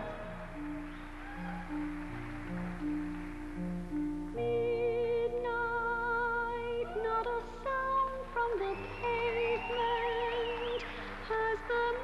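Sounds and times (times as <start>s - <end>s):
instrumental backing: 0.0s - 12.0s
show tune singing: 4.4s - 12.0s.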